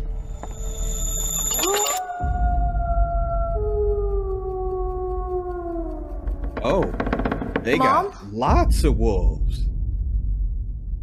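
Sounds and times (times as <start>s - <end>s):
long slowly falling tones: 2.0s - 7.6s
deep rumble: 2.2s - 11.0s.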